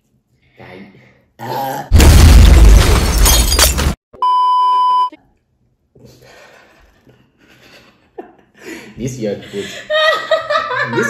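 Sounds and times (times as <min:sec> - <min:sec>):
explosion with crashing debris: 0:01.9 - 0:04.0
high-pitched beep: 0:04.2 - 0:05.2.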